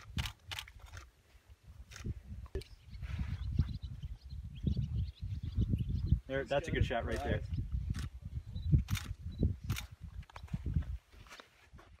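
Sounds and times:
rumbling and bumping on microphone: 0:07.1 - 0:12.0.

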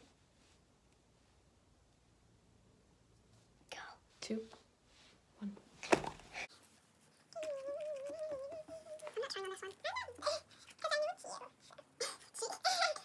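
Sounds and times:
child humming: 0:07.4 - 0:10.5.

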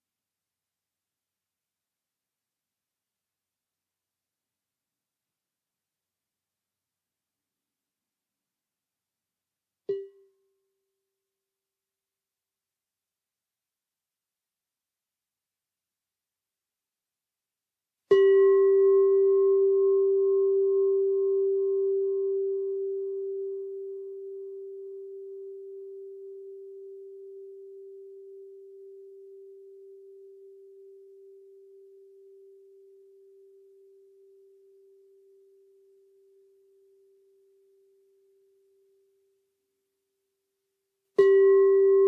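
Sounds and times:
singing bowl ringing: 0:18.1 - 0:35.0, 0:41.2 - 0:42.0.

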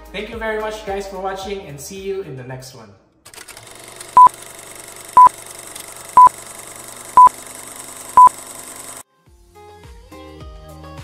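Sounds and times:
loud electronic beeps: 0:07.2 - 0:07.4, 0:08.1 - 0:08.4.

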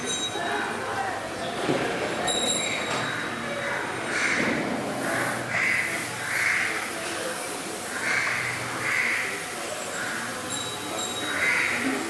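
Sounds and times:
crow cawing: 0:03.7 - 0:04.5, 0:05.1 - 0:06.8, 0:07.9 - 0:09.4, 0:11.4 - 0:11.8.

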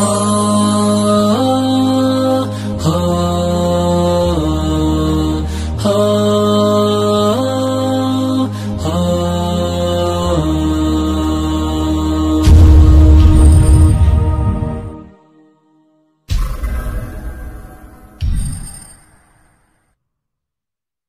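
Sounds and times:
low drone: 0:00.0 - 0:15.2
layered vocal chords: 0:00.0 - 0:18.2.

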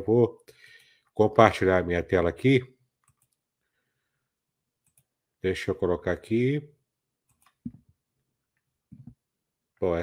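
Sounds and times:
computer mouse clicks: 0:03.0 - 0:03.4, 0:04.8 - 0:05.2, 0:07.3 - 0:07.9.

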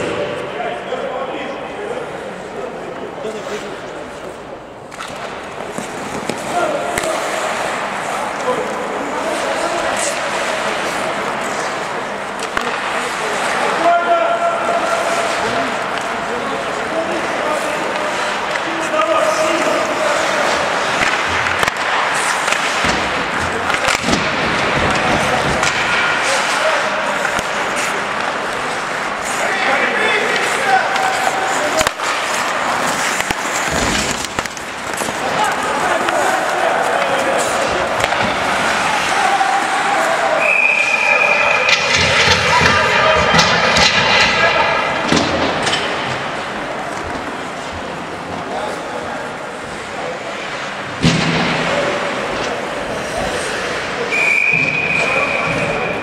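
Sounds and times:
sticks and puck clacking: 0:02.9 - 0:56.0
skate blades scraping ice: 0:03.3 - 0:43.8, 0:52.0 - 0:54.2
players calling out: 0:05.8 - 0:46.9.

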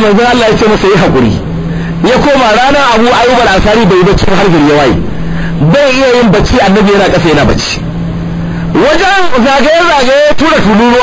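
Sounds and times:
man preaching: 0:00.0 - 0:07.8, 0:08.7 - 0:11.0
steady low hum: 0:00.0 - 0:11.0.

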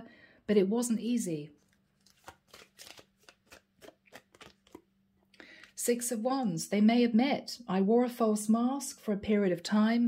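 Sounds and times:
cards being shuffled: 0:01.6 - 0:04.9.

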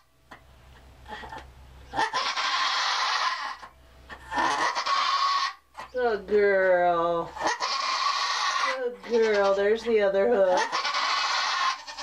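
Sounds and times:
goat bleating: 0:02.0 - 0:03.6, 0:04.3 - 0:05.6, 0:07.3 - 0:09.7, 0:10.5 - 0:12.0.

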